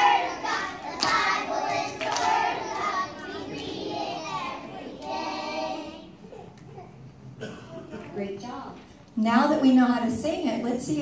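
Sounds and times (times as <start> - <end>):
sharp claps: 0.0 - 3.8
children singing: 0.0 - 6.2.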